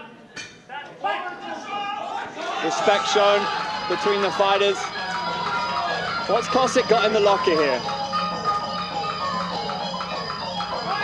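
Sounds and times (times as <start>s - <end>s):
people calling out: 0.9s - 9.2s, 10.6s - 11.0s.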